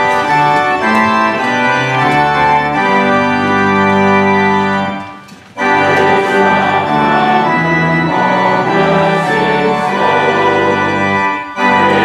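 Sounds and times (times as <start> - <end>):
church organ chords: 0.0 - 12.0.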